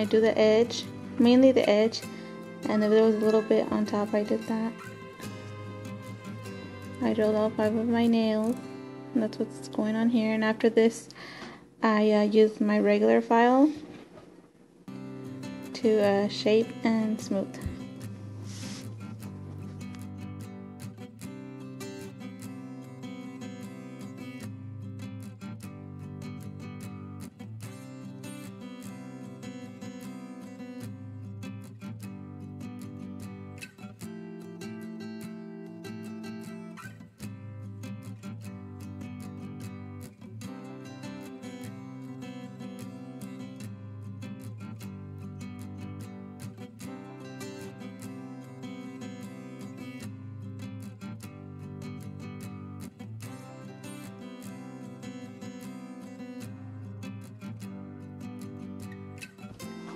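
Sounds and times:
strummed acoustic guitar: 0.0s - 59.9s.

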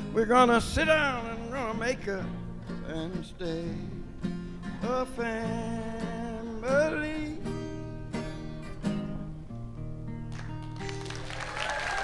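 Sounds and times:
acoustic guitar chord ringing: 0.0s - 11.0s
audience applause: 10.3s - 12.0s.

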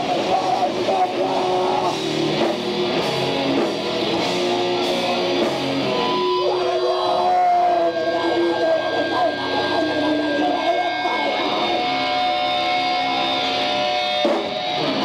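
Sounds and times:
distorted electric guitars: 0.0s - 15.0s
drums: 0.0s - 15.0s.

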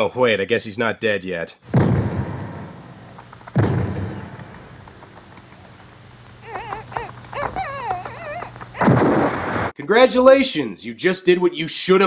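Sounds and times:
heavy crashing stomp: 1.7s - 6.4s
monster squealing cries: 6.4s - 9.0s.

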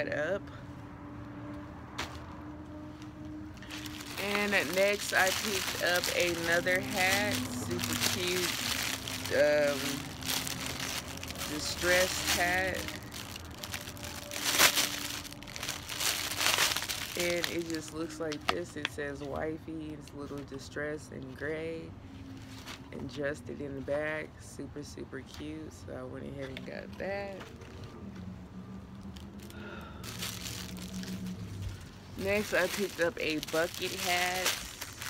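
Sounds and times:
cap rustling and crinkling: 3.5s - 18.7s, 29.0s - 35.0s.

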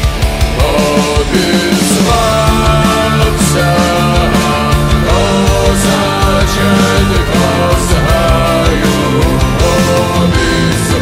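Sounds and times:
loud rock music: 0.0s - 11.0s.

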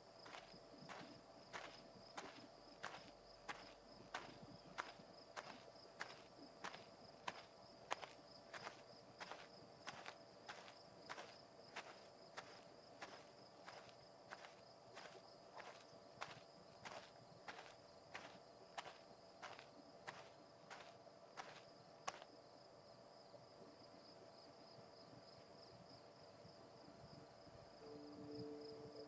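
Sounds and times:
faint high-pitched hum: 0.0s - 29.0s.

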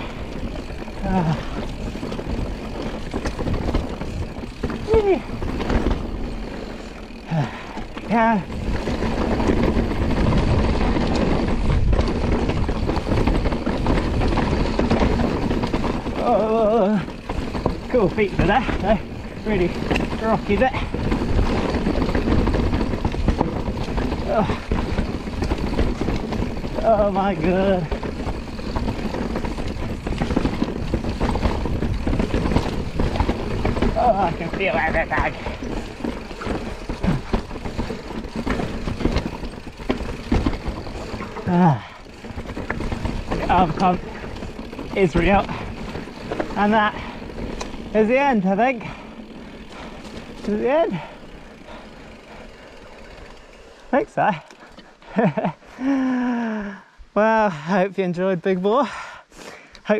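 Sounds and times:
bike rattling clicks: 0.0s - 56.7s
bike tyres rolling over stones: 0.0s - 59.9s.

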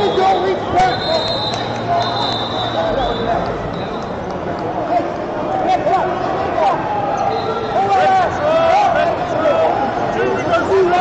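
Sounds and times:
spectators and coaches calling out: 0.0s - 11.0s.

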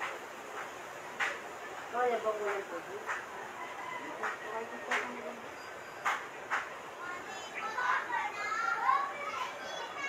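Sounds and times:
children calling and chattering: 3.4s - 10.0s.

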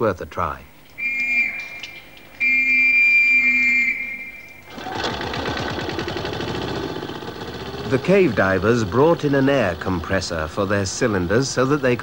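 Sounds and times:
shrill whistle blast: 1.0s - 4.7s
air compressor running: 4.7s - 11.8s.

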